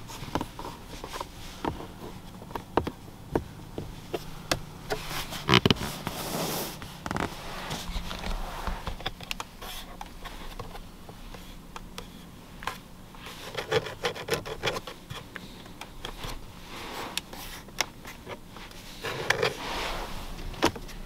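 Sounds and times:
hand rubbing leather upholstery: 0.0 - 21.0.

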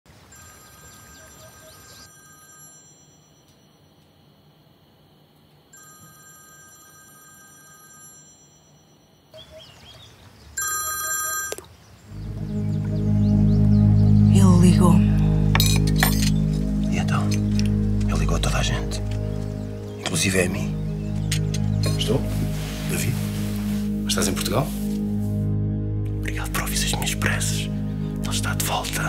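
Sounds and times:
telephone ringing: 0.3 - 4.0, 5.7 - 9.3, 10.6 - 11.6
music: 12.1 - 29.0.

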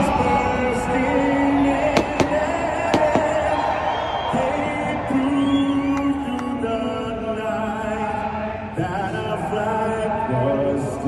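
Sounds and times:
singer over stadium loudspeakers: 0.0 - 11.0
fireworks bangs: 1.8 - 3.8.

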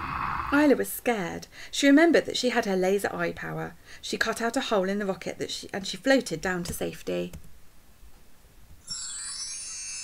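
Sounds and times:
high shimmering chime: 8.8 - 10.0.

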